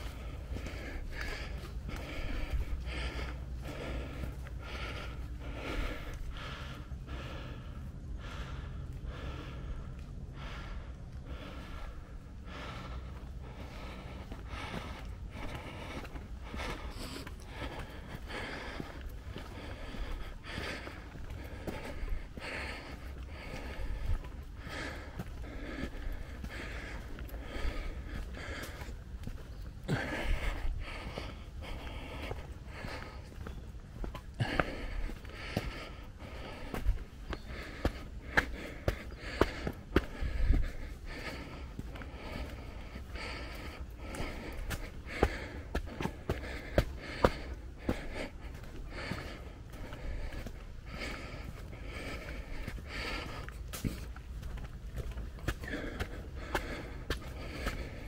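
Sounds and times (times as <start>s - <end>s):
footsteps on a path: 0.0s - 58.0s
heavy rhythmic breathing: 0.0s - 58.0s.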